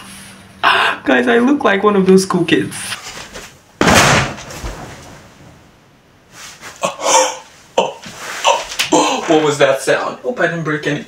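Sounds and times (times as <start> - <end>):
person landing on bed thump: 3.8 - 5.4.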